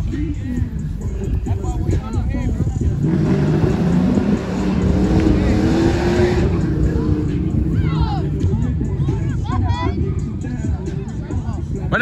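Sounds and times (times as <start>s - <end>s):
wind rumble on microphone: 0.0s - 12.0s
vehicle passing: 2.9s - 8.5s.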